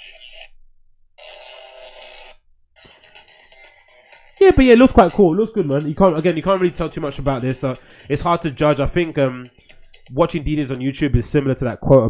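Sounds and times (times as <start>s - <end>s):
electronic dance music: 2.8s - 10.8s.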